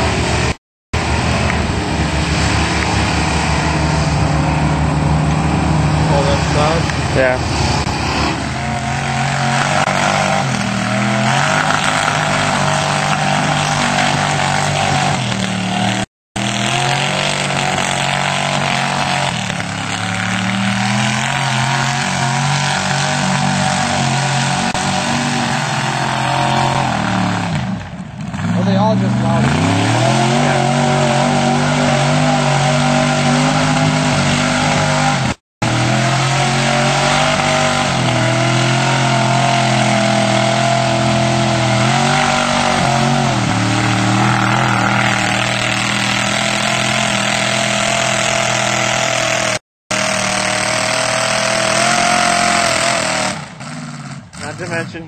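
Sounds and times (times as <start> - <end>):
truck engine revving: 0.0 - 55.0.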